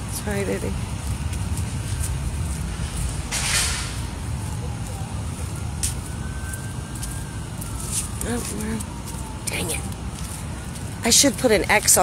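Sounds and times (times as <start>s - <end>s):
faint siren: 0.0s - 12.0s
street traffic rumbling: 0.0s - 12.0s.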